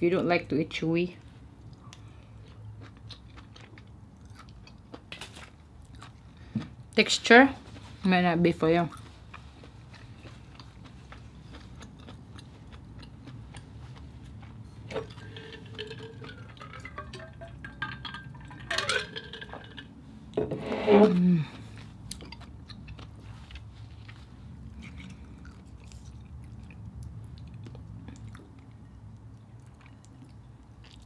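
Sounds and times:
person chewing with wet clicks: 1.2 - 7.0, 8.8 - 18.6, 21.6 - 31.0
drinking and swallowing: 10.0 - 19.9
bottle gurgling: 14.9 - 19.8.

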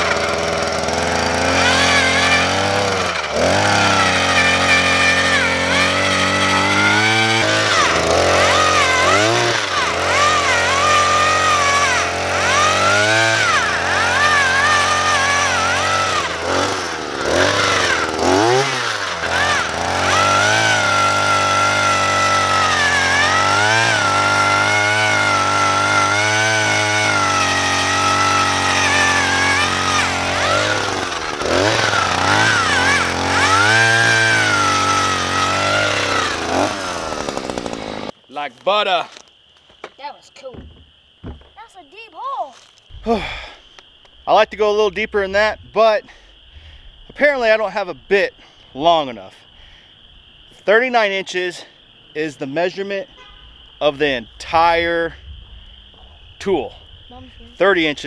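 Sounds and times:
earth auger engine under load: 0.0 - 39.2, 42.9 - 43.6.

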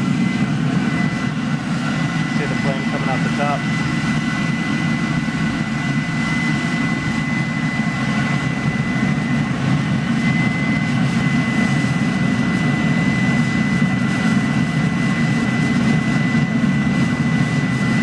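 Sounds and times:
thin steady whine: 0.0 - 18.0.

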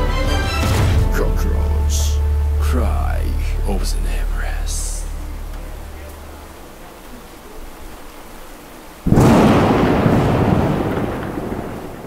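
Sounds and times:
loud rumbling crash: 9.1 - 12.0.

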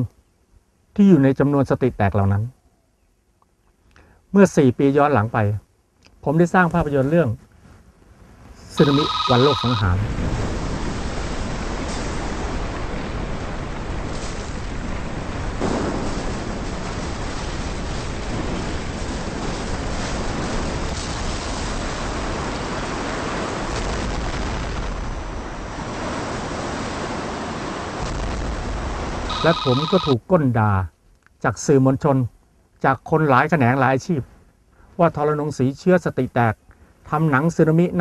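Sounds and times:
surging water and surf: 10.2 - 30.1.

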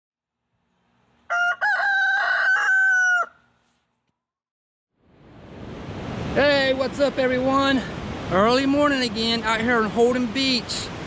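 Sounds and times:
rooster crowing: 1.2 - 3.6.

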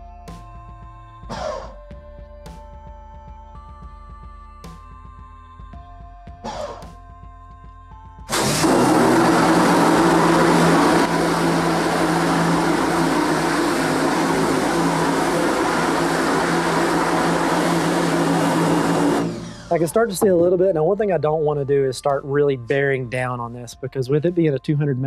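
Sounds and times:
water jet hissing: 8.3 - 20.3
pressure washer motor hum: 8.3 - 20.6.

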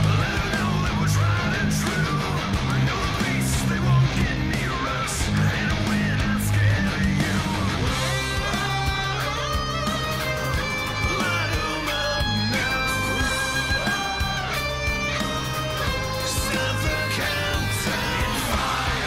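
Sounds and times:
drums: 0.0 - 19.0
electric guitar: 0.0 - 19.0.

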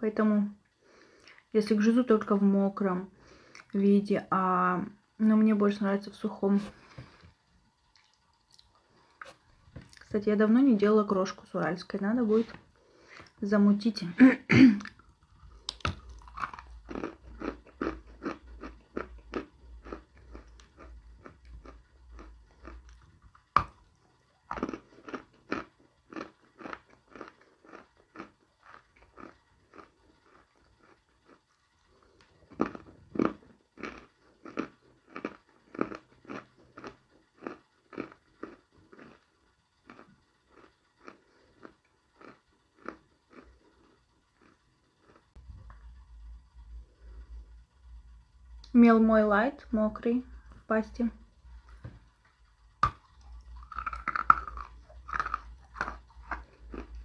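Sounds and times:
chewing and crunching clay: 14.8 - 45.4, 52.8 - 57.0.

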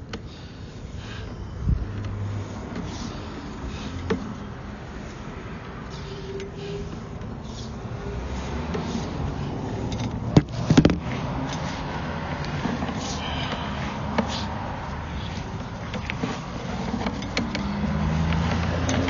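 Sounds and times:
low rumble of cable handling: 0.0 - 19.0.

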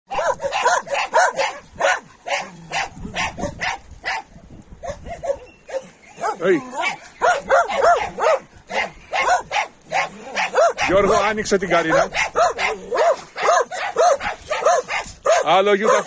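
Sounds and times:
dogs barking: 0.1 - 16.0.

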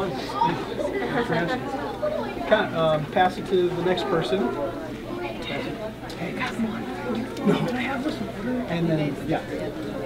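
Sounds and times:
overlapping voices talking: 0.0 - 10.0.

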